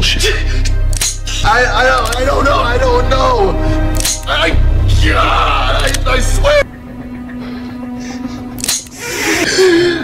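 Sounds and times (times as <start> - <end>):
tense film score low note: 0.0 - 10.0.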